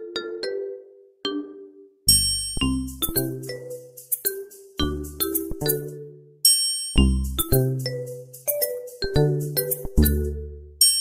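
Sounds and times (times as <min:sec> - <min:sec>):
chime chord over low bass: 0:02.1 - 0:03.0
bell-like struck notes: 0:02.1 - 0:05.9.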